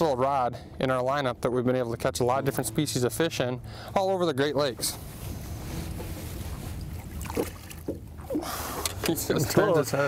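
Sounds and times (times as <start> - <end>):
outboard motor humming: 5.4 - 9.8.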